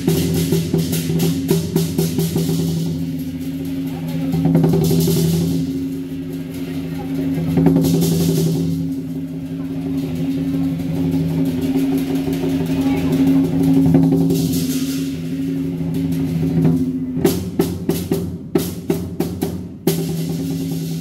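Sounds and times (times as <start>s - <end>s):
cymbal wash: 0.0s - 21.0s
drum roll: 0.0s - 21.0s.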